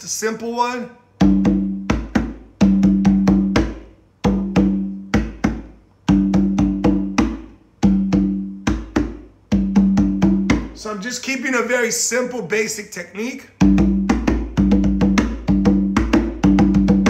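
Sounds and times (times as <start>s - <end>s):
conga drum played by hand: 1.2s - 10.8s, 13.6s - 17.0s.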